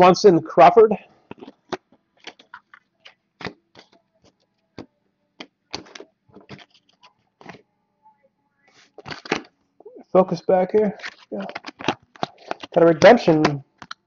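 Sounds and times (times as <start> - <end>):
trading cards clicking and snapping: 1.3 - 7.6, 10.9 - 14.0.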